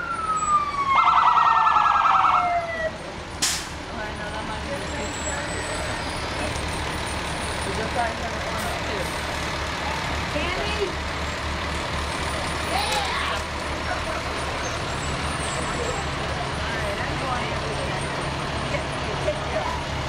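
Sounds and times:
diesel truck engine rumbling: 0.0s - 20.0s.

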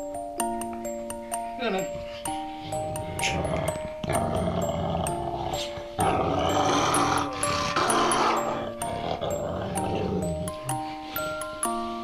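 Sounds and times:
plucked mallet-like music: 0.0s - 12.0s
large dog growling: 2.7s - 10.9s.

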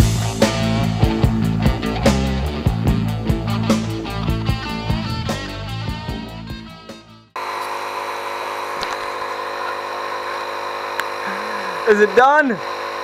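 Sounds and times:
rock guitar music: 0.0s - 7.4s
steady machine hum: 0.0s - 13.0s.

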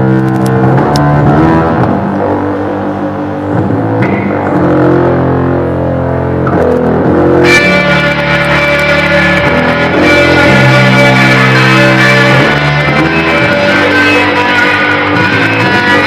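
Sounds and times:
electric guitar sustained chords: 0.0s - 16.0s.

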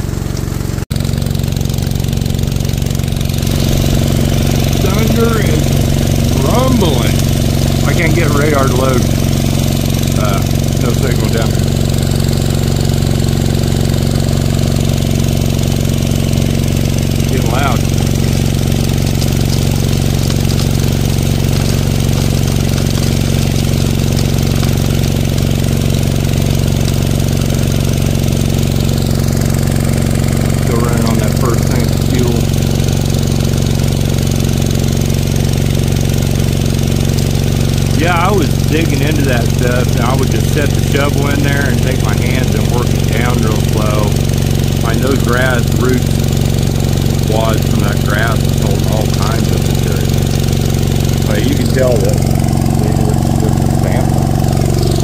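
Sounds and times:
small gasoline engine running: 0.0s - 55.0s
water splashing: 0.0s - 55.0s.

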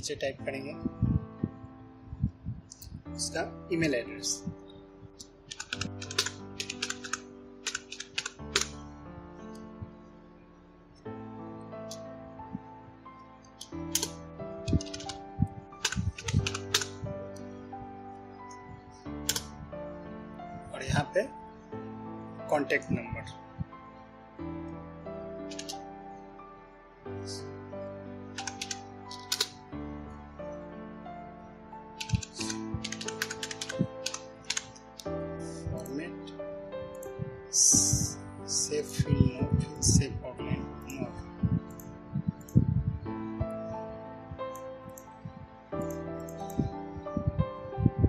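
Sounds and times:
background music: 0.0s - 48.0s
keyboard key clicks: 5.5s - 8.8s, 13.6s - 15.2s, 15.8s - 17.5s, 19.2s - 19.5s, 25.5s - 25.8s, 28.4s - 29.6s, 32.0s - 35.1s.

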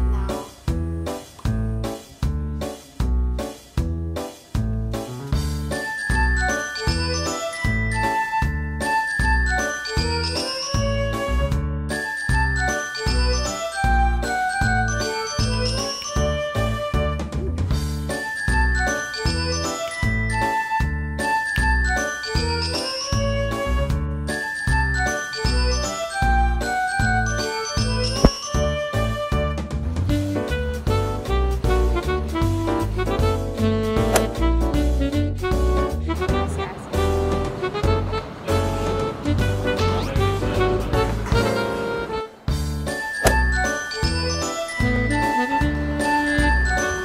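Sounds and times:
upbeat instrumental music: 0.0s - 38.2s, 38.8s - 47.0s.

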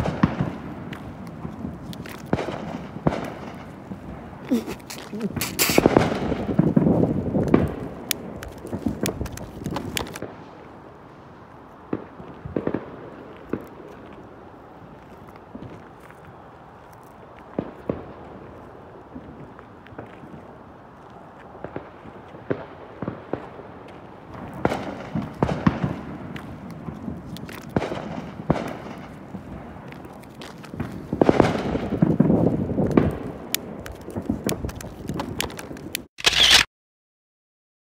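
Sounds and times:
muffled firework bangs: 0.0s - 10.4s
firecrackers cracking: 0.0s - 10.9s, 11.5s - 36.6s
rumbling crackle: 0.0s - 36.6s
loud harsh burst: 4.6s - 6.0s.

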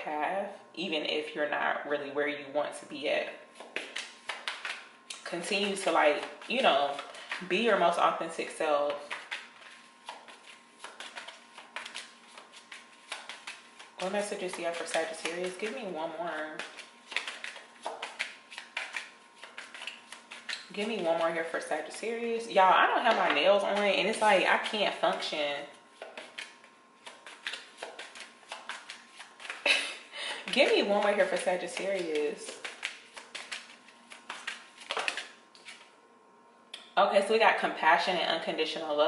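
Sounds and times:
cards shuffled by hand: 3.5s - 7.5s, 8.9s - 15.8s, 16.4s - 22.2s, 23.0s - 35.9s.

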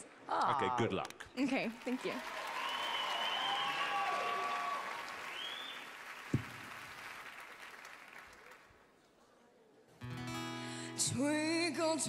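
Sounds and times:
audience applauding: 1.7s - 8.8s
people cheering: 2.2s - 8.6s.

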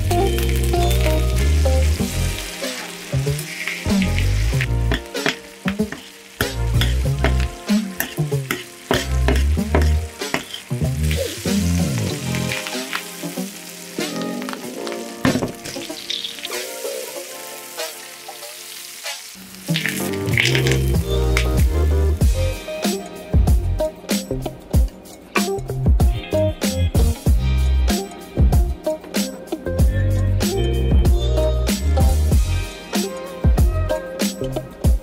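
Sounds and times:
butter sizzling in a frying pan: 0.0s - 22.7s
background music: 0.0s - 35.0s
metal utensils clinking on pan: 3.4s - 11.4s.

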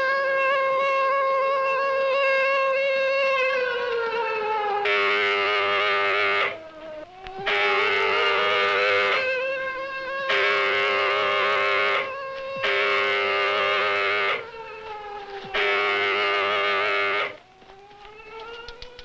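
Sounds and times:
alert siren wailing: 0.0s - 19.0s.

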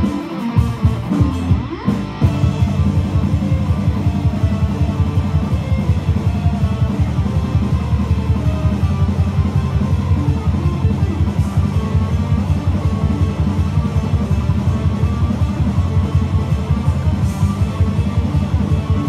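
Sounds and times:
electric guitar over rock backing track: 0.0s - 19.0s.

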